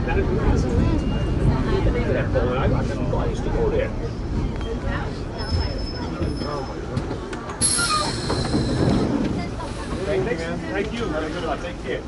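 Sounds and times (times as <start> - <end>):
subway train rumbling: 0.0 - 12.0
sharp hiss with squealing edge: 7.6 - 8.3
high-pitched wheel squeal: 7.6 - 9.1.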